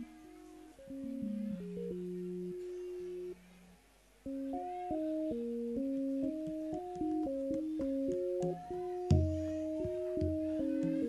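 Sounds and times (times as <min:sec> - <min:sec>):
electronic keyboard notes: 0:00.0 - 0:11.0.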